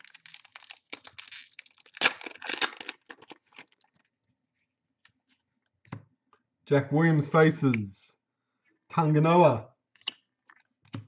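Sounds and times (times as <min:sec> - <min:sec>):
foil pack tearing and crinkling: 0:00.0 - 0:03.8.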